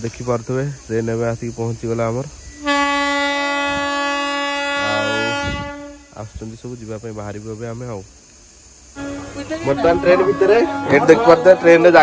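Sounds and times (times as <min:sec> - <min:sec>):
train horn blast: 0:02.6 - 0:06.2, 0:09.0 - 0:12.0.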